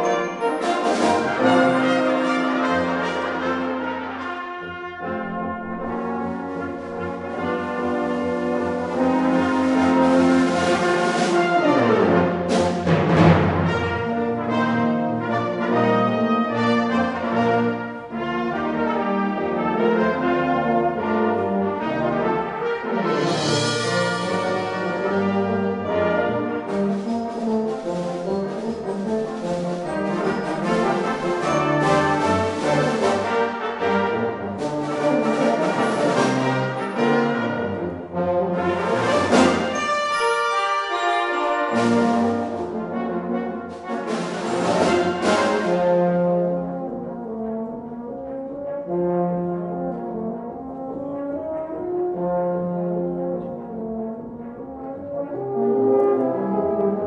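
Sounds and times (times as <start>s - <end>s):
percussion: 0.0s - 18.4s, 22.4s - 46.6s
brass ensemble playing: 0.0s - 57.0s.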